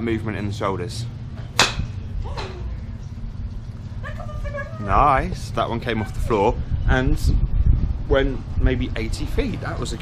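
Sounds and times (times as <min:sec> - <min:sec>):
golf club striking ball: 0:01.4 - 0:02.5.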